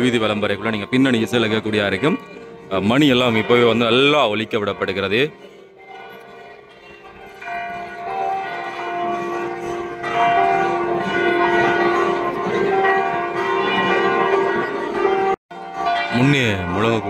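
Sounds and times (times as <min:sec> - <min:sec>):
temple bells ringing: 0:00.0 - 0:17.0.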